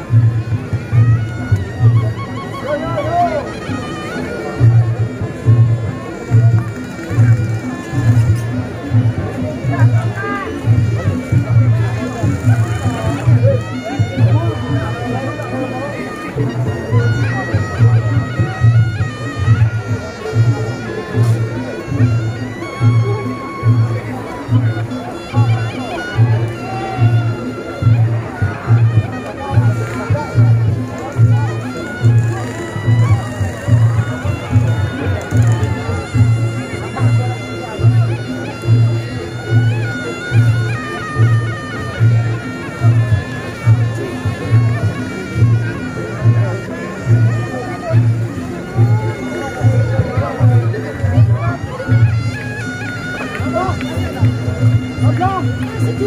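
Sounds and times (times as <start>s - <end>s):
shawm melody: 0.0s - 56.0s
shrill double-reed trumpet melody: 0.8s - 5.3s.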